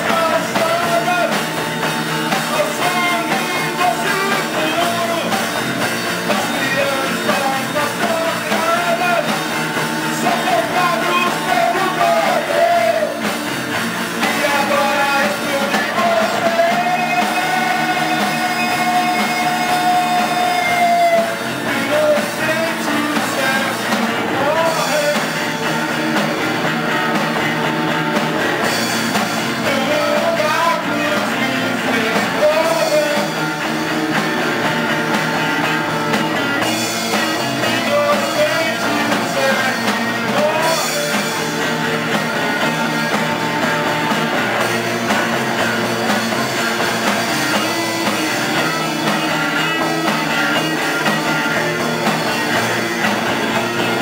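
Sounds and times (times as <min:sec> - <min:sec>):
person singing: 0:00.0 - 0:01.6, 0:02.3 - 0:13.3, 0:14.2 - 0:25.7, 0:29.4 - 0:33.6, 0:36.9 - 0:41.8, 0:47.0 - 0:52.2
bass guitar: 0:00.0 - 0:54.0
drums: 0:00.0 - 0:54.0
electric guitar: 0:00.0 - 0:54.0.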